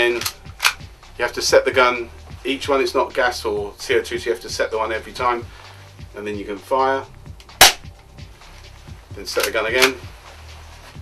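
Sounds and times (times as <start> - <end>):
bb pistol shot snap: 0.2 - 0.8, 7.5 - 7.9.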